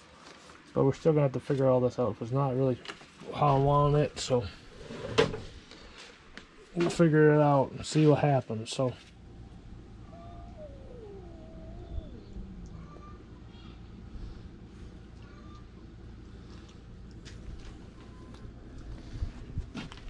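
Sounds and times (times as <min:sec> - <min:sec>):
low steady rumble: 0:00.0 - 0:20.0
cat meowing: 0:10.1 - 0:13.8.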